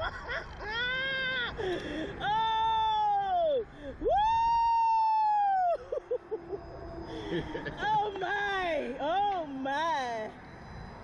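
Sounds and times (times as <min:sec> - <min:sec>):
woman screaming: 0:02.2 - 0:05.9.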